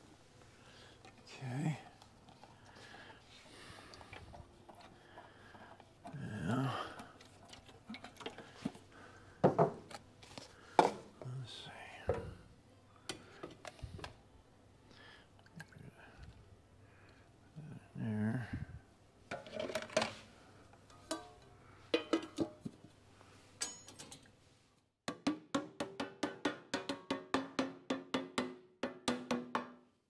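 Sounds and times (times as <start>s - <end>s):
person half-whispering: 1.2s - 2.0s, 6.1s - 7.0s, 11.2s - 12.4s, 17.5s - 18.8s
containers and lids knocking: 9.4s - 9.8s, 22.0s - 22.7s, 25.1s - 29.8s.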